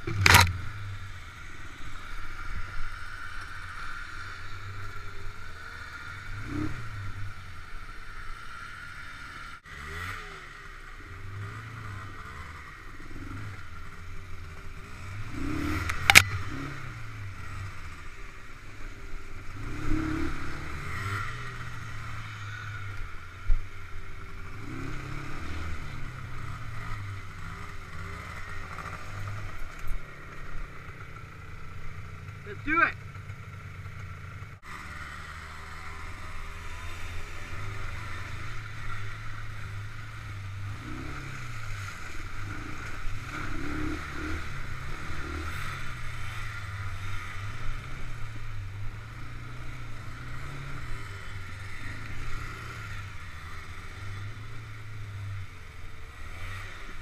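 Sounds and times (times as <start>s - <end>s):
atv engine revving: 0.0s - 57.0s
vehicle rattling over ruts: 0.0s - 57.0s.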